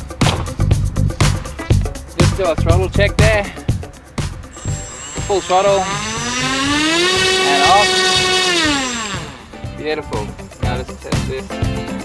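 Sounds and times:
electric motor and propeller whine: 0:04.5 - 0:09.7.

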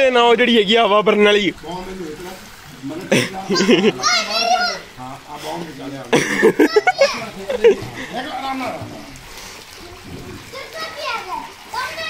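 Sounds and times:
child calling out: 0:03.6 - 0:04.9, 0:10.5 - 0:12.0.

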